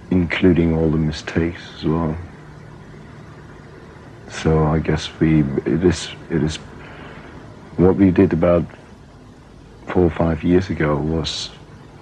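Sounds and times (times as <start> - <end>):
man speaking: 0.0 - 2.4, 4.3 - 6.8, 7.8 - 8.8, 9.8 - 11.7
faint low hum and hiss: 0.0 - 12.0.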